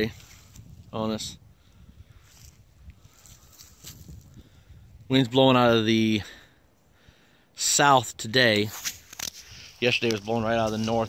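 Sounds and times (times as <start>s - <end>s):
footsteps on dry grass: 0.0s - 0.9s, 1.9s - 4.6s, 8.7s - 11.0s
wind rumbling on microphone: 0.0s - 6.4s.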